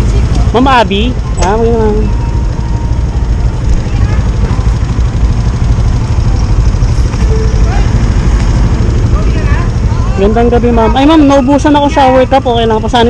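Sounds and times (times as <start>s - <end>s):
motorcycle engine idling: 0.0s - 13.0s
faint voices: 3.3s - 5.2s.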